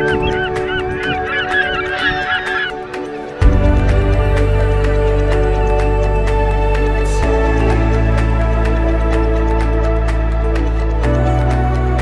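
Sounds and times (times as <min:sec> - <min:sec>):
flock of birds calling: 0:00.0 - 0:03.4
soft background music: 0:00.0 - 0:12.0.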